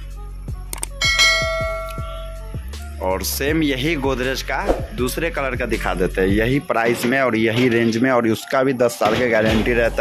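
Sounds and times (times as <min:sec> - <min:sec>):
background music: 0:00.0 - 0:10.0
bell chime: 0:01.0 - 0:02.4.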